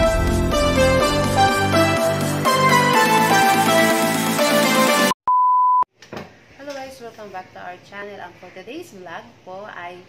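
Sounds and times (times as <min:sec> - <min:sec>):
intro jingle music: 0:00.0 - 0:05.2
high beep: 0:05.3 - 0:05.9.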